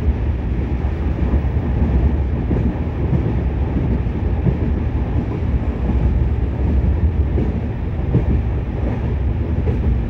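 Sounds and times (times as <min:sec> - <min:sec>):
train wheels rumbling on rails: 0:00.0 - 0:10.0.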